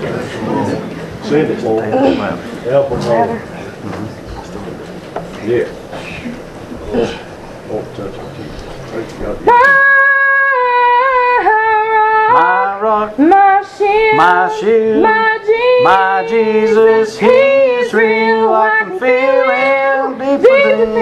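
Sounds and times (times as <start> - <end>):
lower voice singing harmony: 9.4 - 21.0
woman singing with vibrato: 9.4 - 21.0.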